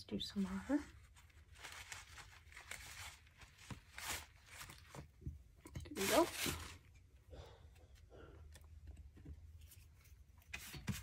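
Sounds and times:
damp paper rustling and tearing: 0.3 - 5.2, 5.9 - 6.9.

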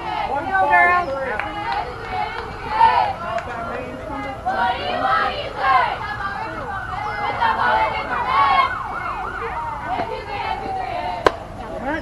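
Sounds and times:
people talking: 0.0 - 12.0
siren sweeping up and down: 5.8 - 11.2.

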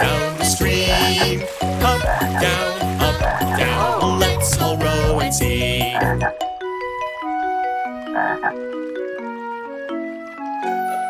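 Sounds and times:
cartoon frog croaking: 0.8 - 5.1, 5.7 - 6.3, 8.2 - 8.6.

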